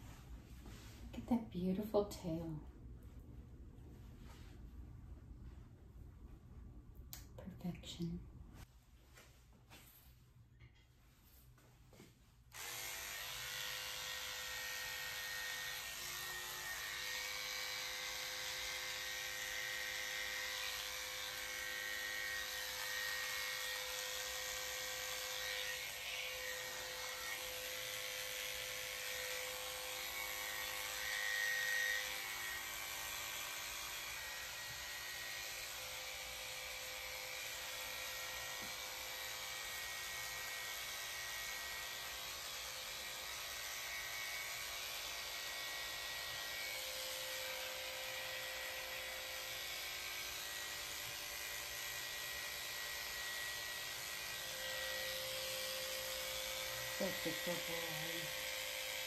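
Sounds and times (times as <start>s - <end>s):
electric clipper motor whine: 12.5s - 59.0s.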